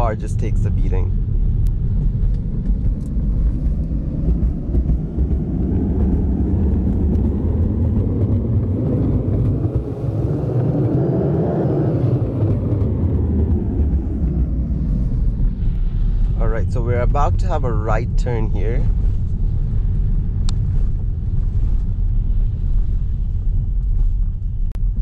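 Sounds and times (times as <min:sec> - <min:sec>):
tyre and road noise in car cabin: 0:00.0 - 0:25.0.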